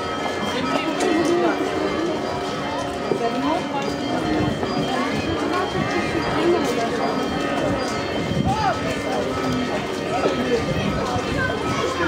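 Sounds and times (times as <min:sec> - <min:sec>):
crowd chattering: 0:00.0 - 0:12.0
footsteps on cobblestones: 0:00.0 - 0:12.0.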